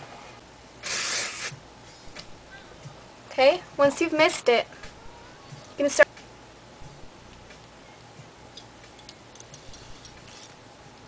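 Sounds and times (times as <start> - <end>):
hairspray hiss: 0.8 - 1.6.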